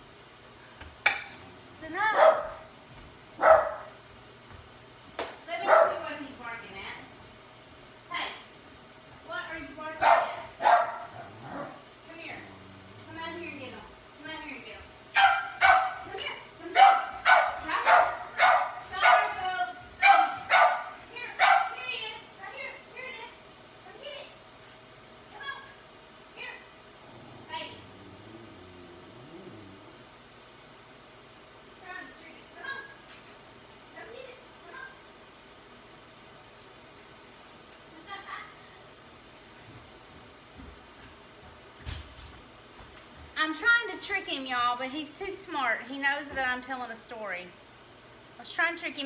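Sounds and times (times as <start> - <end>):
dog barking: 2.1 - 2.7, 3.4 - 4.0, 5.6 - 6.0, 10.0 - 11.8, 15.2 - 16.1, 16.8 - 19.4, 20.0 - 21.8.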